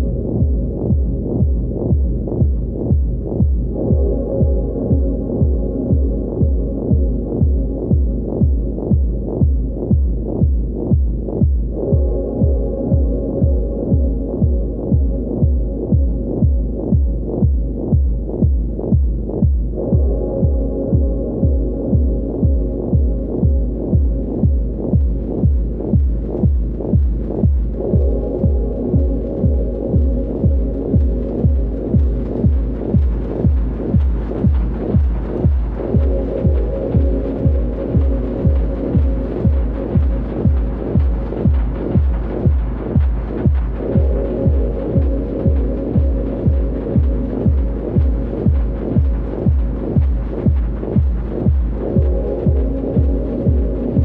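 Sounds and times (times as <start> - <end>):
deep kick drum beat: 0.0 - 54.0
murky hissy hum: 0.0 - 54.0.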